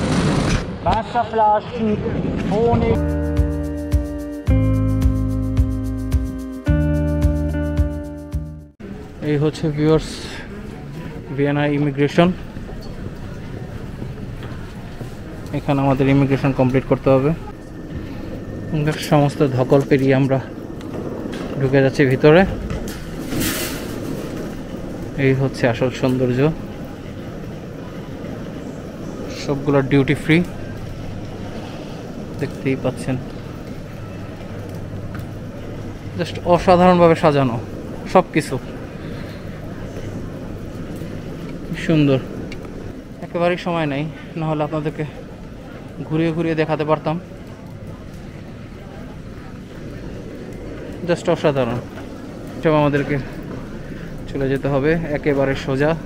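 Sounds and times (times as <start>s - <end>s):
airport terminal rumble: 0.0s - 56.0s.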